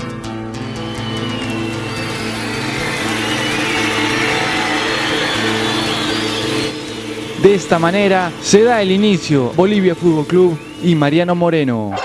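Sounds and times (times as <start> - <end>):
music with repeating bass line: 0.0 - 11.2
stadium crowd cheering and whistling: 0.0 - 12.0.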